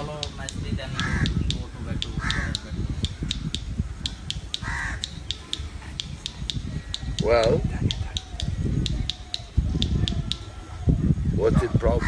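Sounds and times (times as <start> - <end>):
rapid even ticking: 0.0 - 10.6.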